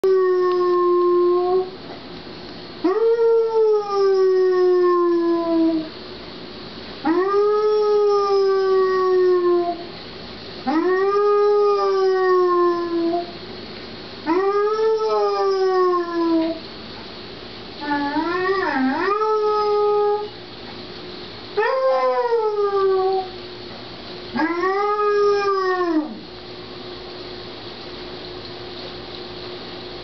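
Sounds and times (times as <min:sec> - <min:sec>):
dog howling: 0:00.0 - 0:01.8, 0:02.8 - 0:05.9, 0:07.0 - 0:09.9, 0:10.7 - 0:13.4, 0:14.2 - 0:16.6, 0:17.8 - 0:20.4, 0:21.6 - 0:23.4, 0:24.3 - 0:26.3.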